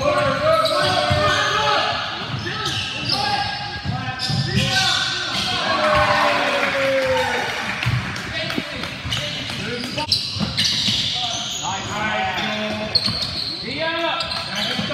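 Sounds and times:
sneaker squeaks: 0.0 - 5.7, 9.0 - 14.9.

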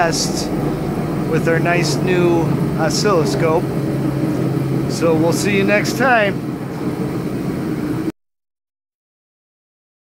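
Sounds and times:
machine hum: 0.0 - 8.1.

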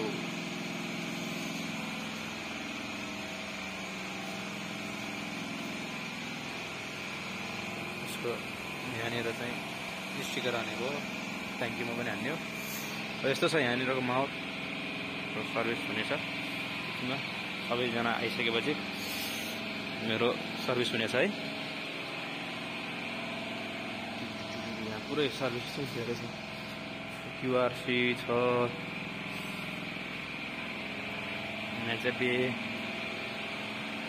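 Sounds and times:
motorcycle engine idling: 0.0 - 34.0
steady background hum: 0.0 - 34.0
steady high-pitched whine: 0.0 - 34.0
people talking: 8.1 - 9.6, 10.2 - 11.0, 11.6 - 12.4, 13.2 - 14.3, 17.0 - 18.8, 24.5 - 26.4, 27.4 - 28.7, 31.8 - 32.6.

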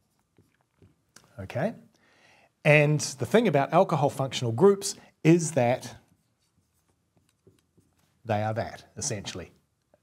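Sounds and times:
marker pen writing on whiteboard: 0.0 - 1.4, 5.4 - 10.0.

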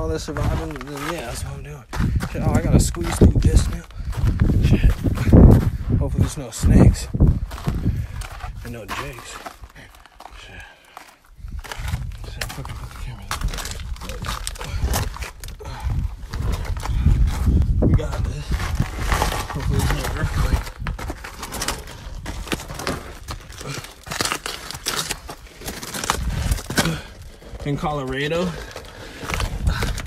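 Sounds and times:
clothing scraping against rock: 0.0 - 5.6, 7.2 - 15.4, 16.1 - 30.0.

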